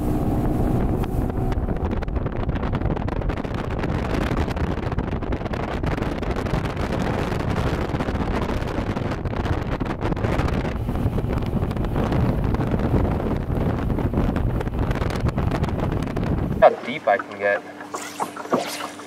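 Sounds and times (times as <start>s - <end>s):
boat hull on choppy water: 0.0s - 19.0s
outboard engine running: 0.0s - 19.0s
wind buffeting microphone: 0.0s - 19.0s.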